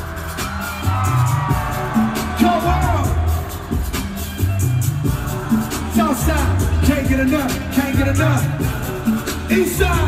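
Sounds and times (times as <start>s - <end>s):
live hip-hop music: 0.0s - 10.0s.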